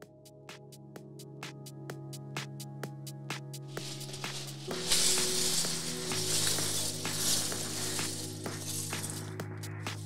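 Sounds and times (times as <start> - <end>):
background music with held low notes: 0.0 - 10.0.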